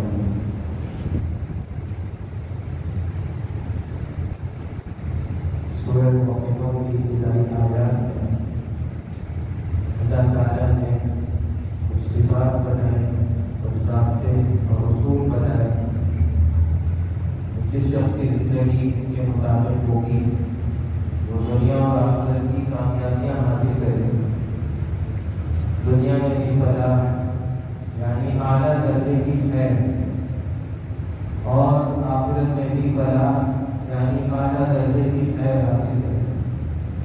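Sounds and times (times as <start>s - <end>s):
low background rumble: 0.0s - 37.0s
man speaking: 5.8s - 8.5s, 10.0s - 16.1s, 17.6s - 20.5s, 21.2s - 24.4s, 25.5s - 30.2s, 31.4s - 36.4s
low rumble: 10.8s - 18.4s.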